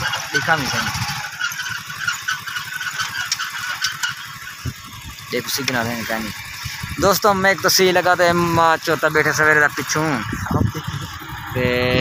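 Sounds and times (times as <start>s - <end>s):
motorcycle engine running: 0.0s - 12.0s
wind noise on microphone: 10.3s - 12.0s.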